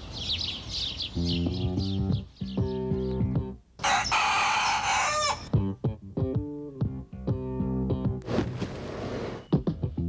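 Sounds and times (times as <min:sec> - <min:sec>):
plucked guitar-like music: 0:05.5 - 0:08.2.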